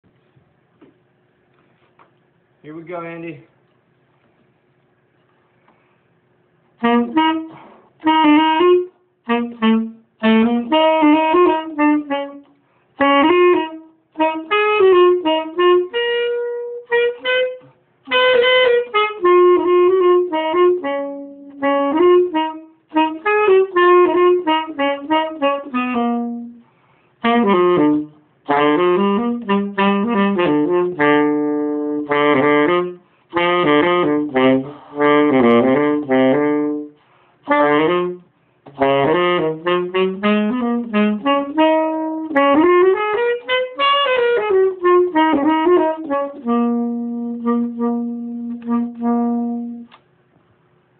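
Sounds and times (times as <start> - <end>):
solo tenor saxophone: 6.7 - 50.1.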